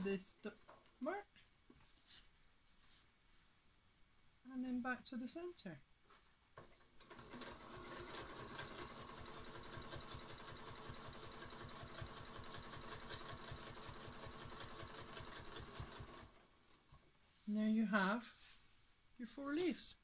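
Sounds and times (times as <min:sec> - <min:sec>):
sewing machine stitching: 0:06.6 - 0:16.4.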